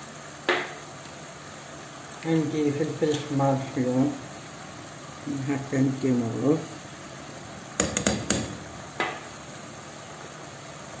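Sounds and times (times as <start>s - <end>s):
metal spoon knocking on a pan: 7.8s - 9.2s.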